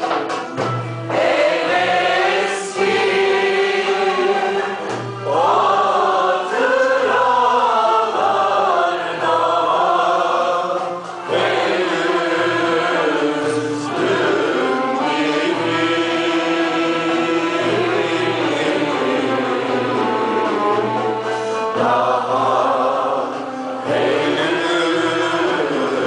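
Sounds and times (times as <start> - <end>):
mixed choir singing: 1.1 - 26.0.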